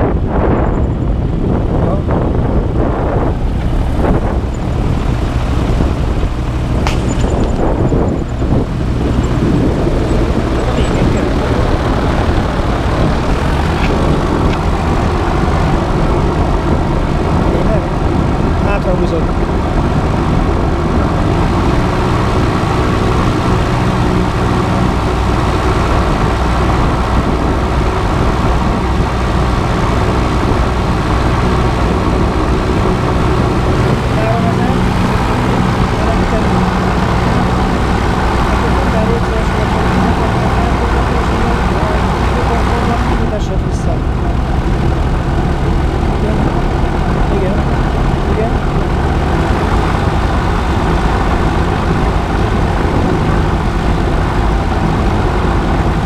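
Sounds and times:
aircraft engine running: 0.0 - 56.0
sharp click: 6.8 - 7.6.

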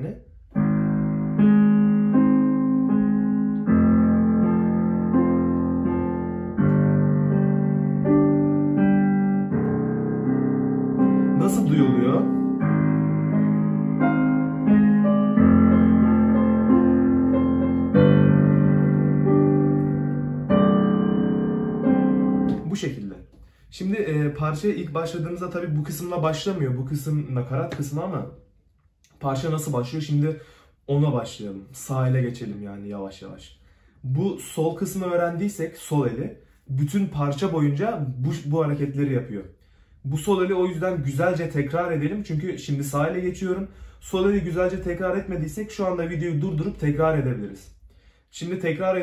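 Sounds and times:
digital piano broken chords: 0.0 - 32.6, 34.0 - 39.4, 40.0 - 49.0.

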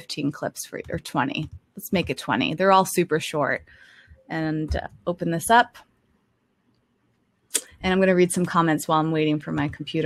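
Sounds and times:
woman speaking: 0.0 - 3.7, 4.3 - 5.9, 7.6 - 10.0.

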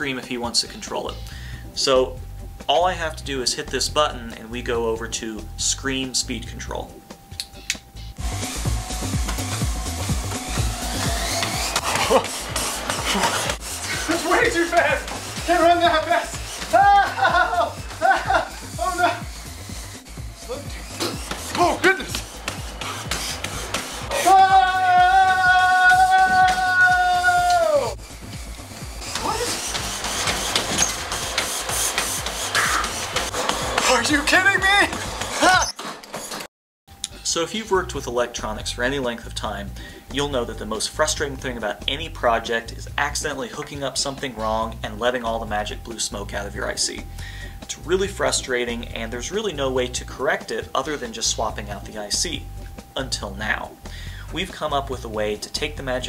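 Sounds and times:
running footsteps on treadmill: 8.2 - 35.6
treadmill belt and motor rushing: 8.2 - 36.5
person crying out: 11.9 - 12.3, 16.6 - 19.3, 24.1 - 28.0
breathless yells: 16.2 - 17.7, 24.0 - 28.0
man screaming: 16.6 - 19.3, 24.1 - 28.0.

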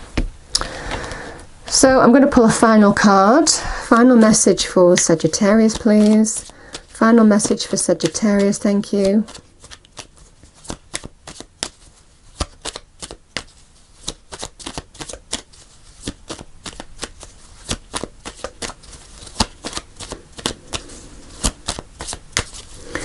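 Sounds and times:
cards shuffled by hand: 3.9 - 23.0.

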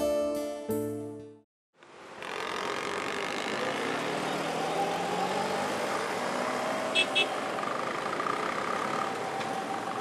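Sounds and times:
road traffic: 1.7 - 10.0.

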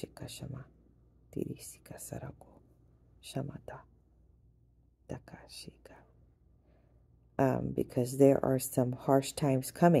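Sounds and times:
woman whispering: 1.4 - 2.6, 3.2 - 3.9, 5.1 - 6.2.

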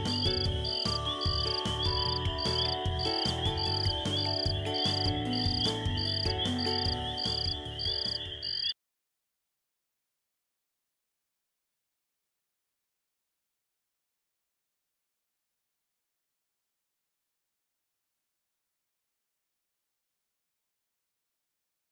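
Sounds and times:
soft background music: 0.0 - 8.7
insect trill: 0.1 - 8.7
cricket chirping: 3.5 - 8.7.

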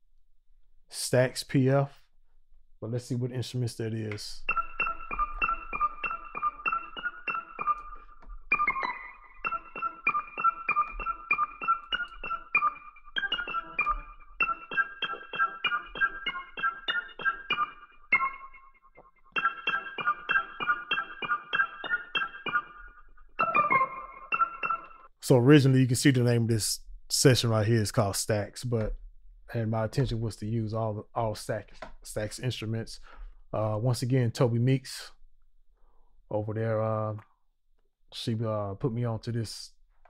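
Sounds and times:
quick repeated high keyboard notes: 4.4 - 25.1.

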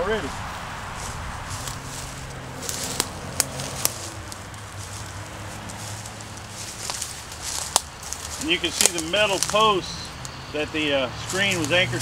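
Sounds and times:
footsteps crunching through dry leaves: 0.0 - 12.0.

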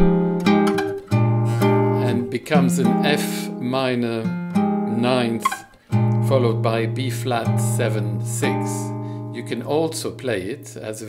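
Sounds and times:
classical guitar chords: 0.0 - 10.8.

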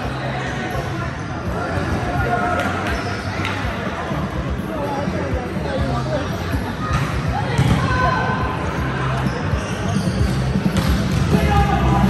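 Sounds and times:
players' voices: 0.0 - 12.0
volleyballs struck and bouncing: 10.0 - 11.6.

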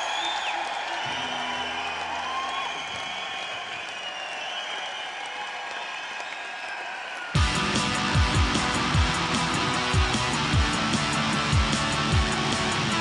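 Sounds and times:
concert crowd noise: 0.0 - 13.0
drums: 7.3 - 13.0
electric guitar: 7.4 - 13.0.

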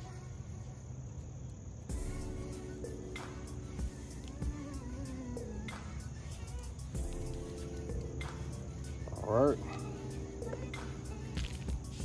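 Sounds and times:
faint background music: 0.0 - 12.0
high-pitched insect trill: 0.0 - 12.0.

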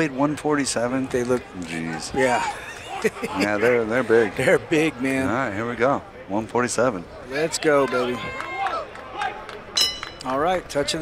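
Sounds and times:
sharp high ringing: 9.8 - 10.4.

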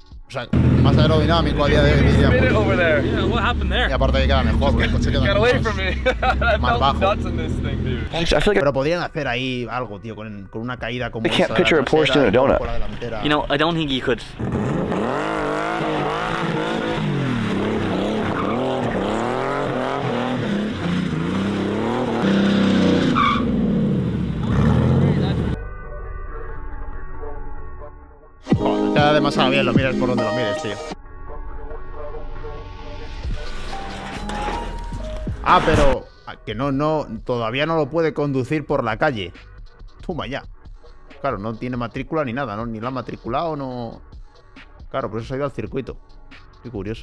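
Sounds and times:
man talking: 0.3 - 14.4, 28.5 - 31.0, 35.4 - 39.4, 40.0 - 40.5, 41.2 - 44.0, 46.6 - 47.0
car engine revving: 0.5 - 8.2, 12.8 - 25.6
tyre squeal: 22.8 - 23.6.

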